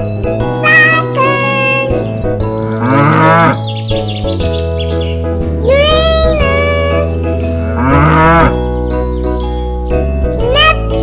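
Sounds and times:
children's music with bass line: 0:00.0 - 0:11.0
cow mooing: 0:02.7 - 0:03.6, 0:07.6 - 0:08.6.

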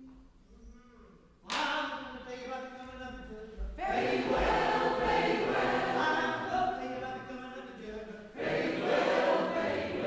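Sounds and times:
choir singing: 0:03.8 - 0:07.3, 0:08.3 - 0:10.0.

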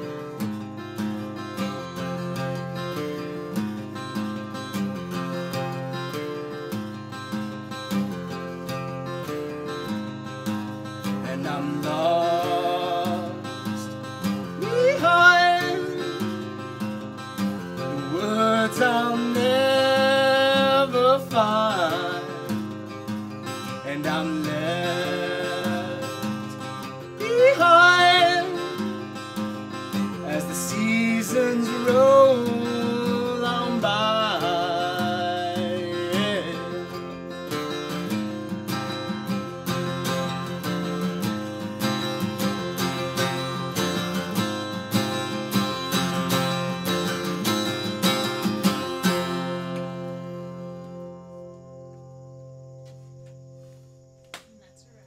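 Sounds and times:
acoustic guitar strumming: 0:00.0 - 0:55.0
man singing: 0:11.0 - 0:37.1, 0:41.9 - 0:46.6.

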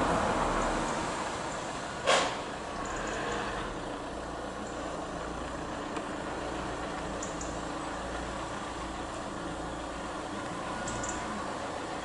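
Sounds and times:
hiss: 0:02.0 - 0:03.6.

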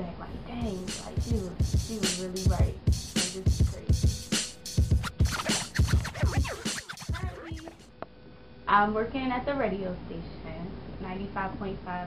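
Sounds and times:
hip hop beat: 0:00.6 - 0:07.8
turntable record scratches: 0:00.6 - 0:07.8.

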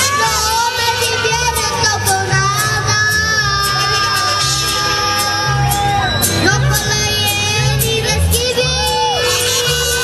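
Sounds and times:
boy singing into microphone: 0:00.0 - 0:05.8, 0:06.4 - 0:10.0
bass line: 0:00.0 - 0:10.0
mariachi band playing: 0:00.0 - 0:10.0.

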